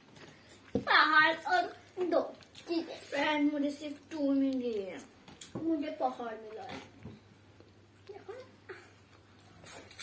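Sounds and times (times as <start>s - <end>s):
child making wordless sounds: 0.8s - 5.0s.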